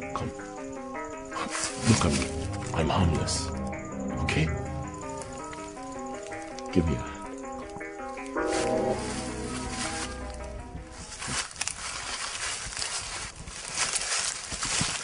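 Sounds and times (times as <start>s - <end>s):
orchestral film score: 0.0s - 11.2s
rustling through dry leaves: 1.3s - 2.8s, 7.7s - 15.0s
low drone: 1.9s - 7.2s.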